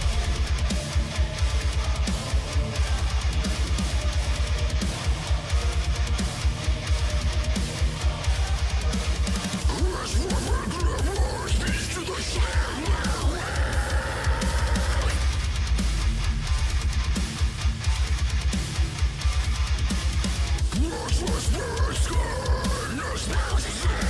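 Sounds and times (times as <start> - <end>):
heavy distorted electric guitars: 0.0 - 24.0
rapid kick drums: 0.0 - 24.0
vocal-like lines: 9.4 - 15.3, 20.7 - 24.0.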